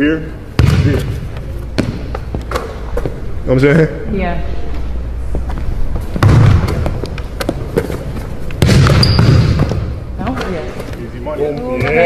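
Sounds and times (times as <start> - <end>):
basketball bouncing: 0.6 - 3.2, 6.1 - 10.1
shoes hitting hardwood court: 0.6 - 3.2, 5.3 - 10.9.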